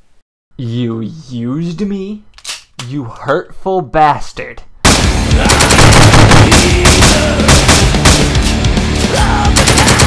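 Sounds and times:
rapid automatic gunfire: 0:04.9 - 0:08.4, 0:09.5 - 0:10.0
loud music: 0:04.9 - 0:10.0.

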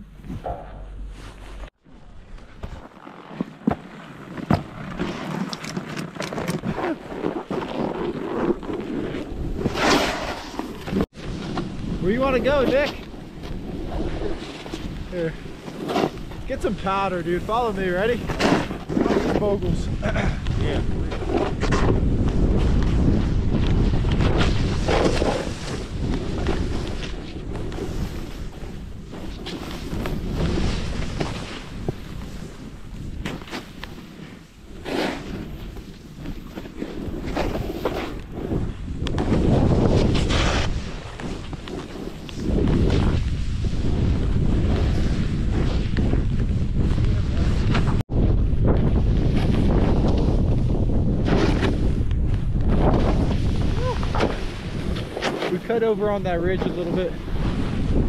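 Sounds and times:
snowboard running through powder snow: 0:06.7 - 0:56.2, 0:56.8 - 0:58.0
wind buffeting microphone: 0:10.9 - 0:33.3, 0:35.4 - 0:58.0.

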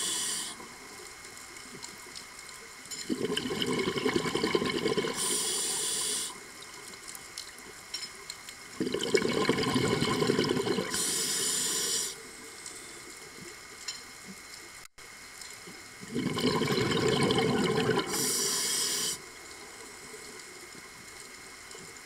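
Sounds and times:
regulator inhale hiss: 0:00.0 - 0:00.7, 0:05.1 - 0:06.5, 0:10.8 - 0:13.2, 0:17.9 - 0:19.3
bubbling exhaled air underwater: 0:03.0 - 0:06.4, 0:08.8 - 0:12.2, 0:16.0 - 0:19.2.

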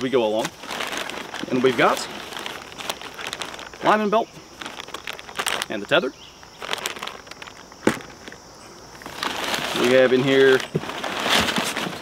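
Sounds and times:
plastic and paper rustling: 0:00.0 - 0:08.4, 0:09.0 - 0:12.0.

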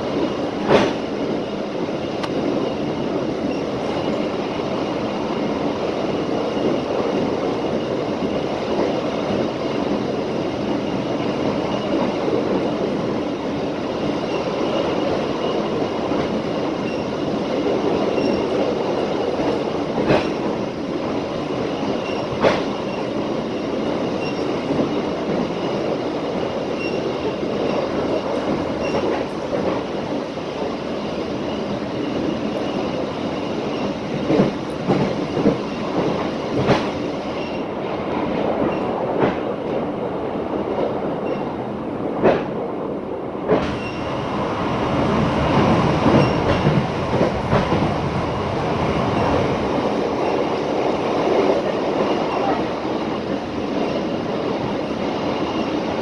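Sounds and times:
train wheels rumbling on rails: 0:00.0 - 0:56.0.

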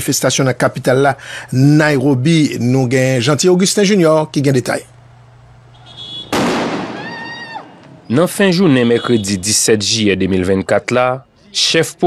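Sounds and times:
loud bang: 0:06.3 - 0:07.4.

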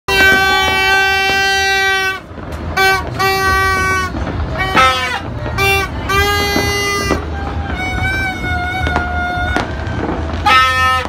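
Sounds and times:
horn blasts: 0:00.1 - 0:11.0.

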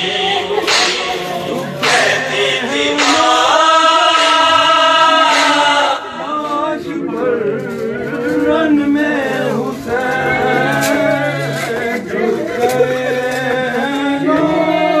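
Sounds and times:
men singing in chorus: 0:00.0 - 0:15.0.

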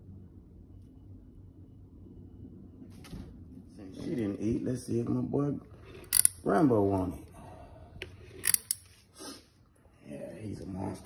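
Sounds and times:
metal tongs clicking: 0:08.4 - 0:08.8.

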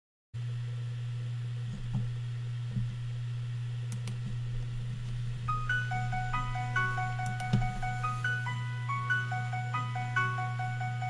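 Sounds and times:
low hum: 0:00.4 - 0:11.0
backing track music: 0:05.5 - 0:11.0.

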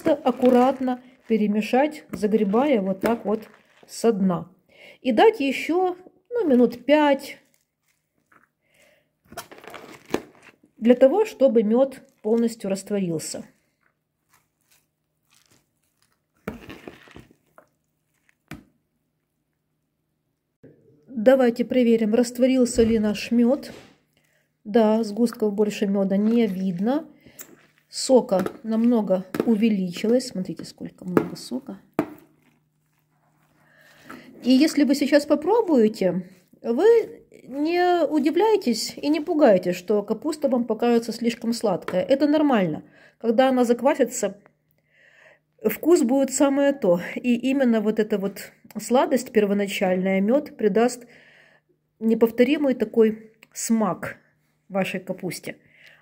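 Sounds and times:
cabbage mixed in plastic bowl: 0:00.0 - 0:04.5, 0:05.4 - 0:18.7, 0:22.4 - 0:42.7.

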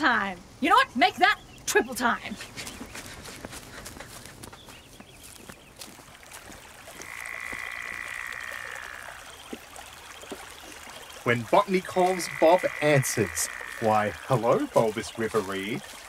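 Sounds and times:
frogs croaking: 0:03.9 - 0:16.0
steady hissing tone: 0:11.2 - 0:15.8.

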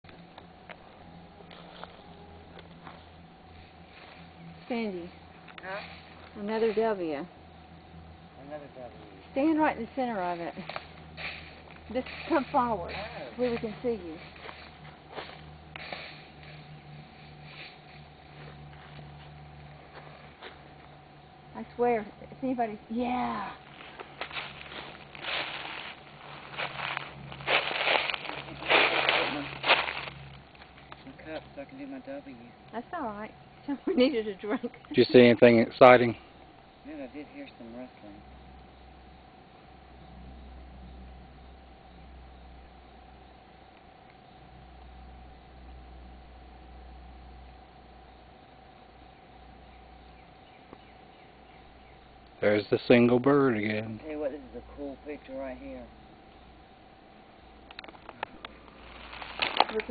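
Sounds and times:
thin steady hum: 0:00.0 - 0:59.9
footsteps on forest floor: 0:00.6 - 0:04.4, 0:10.2 - 0:21.0, 0:23.3 - 0:31.5, 0:57.9 - 0:59.9
bird chirp: 0:48.0 - 0:52.9.

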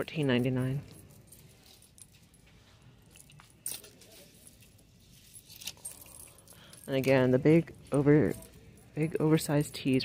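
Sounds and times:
metal bracelet jangling: 0:00.0 - 0:10.0.

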